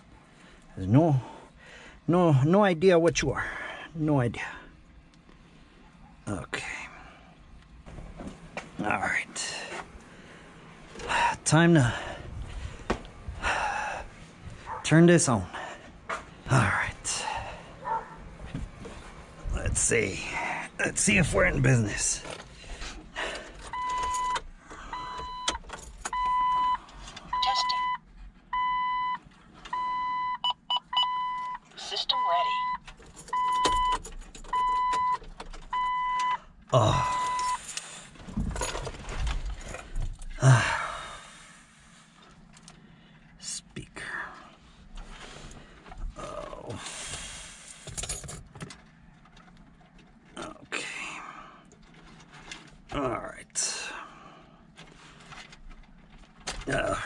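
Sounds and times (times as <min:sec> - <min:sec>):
car warning chime beeping: 0:23.6 - 0:37.6.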